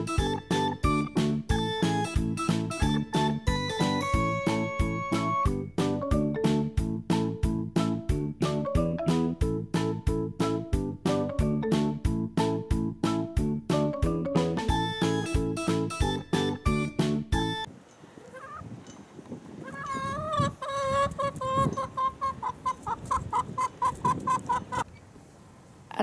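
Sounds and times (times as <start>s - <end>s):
background piano music: 0.0s - 17.7s
chickens clucking: 18.2s - 18.8s, 19.5s - 25.0s.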